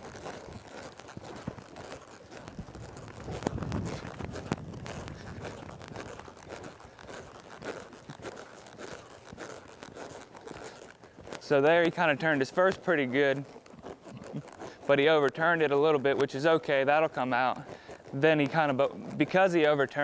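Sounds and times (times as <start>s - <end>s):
close rustling: 0.0s - 19.4s
horse hoofbeats in soft dirt: 0.0s - 20.0s.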